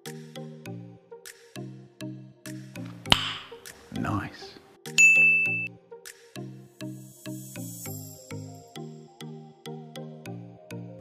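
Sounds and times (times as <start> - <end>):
background music low notes: 0.0 - 11.0
bright ding sound effect: 5.0 - 5.7.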